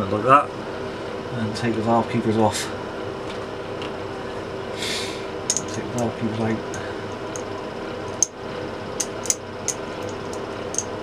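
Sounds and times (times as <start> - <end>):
steady background hum: 0.0 - 11.0
short breathy hiss: 4.8 - 5.2
small metal clicks: 5.5 - 6.1, 6.7 - 8.3, 9.0 - 11.0.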